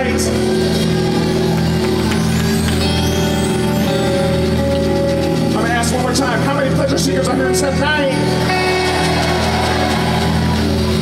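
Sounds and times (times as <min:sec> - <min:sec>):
live band vamping: 0:00.0 - 0:11.0
sustained bass and keyboard: 0:00.0 - 0:11.0.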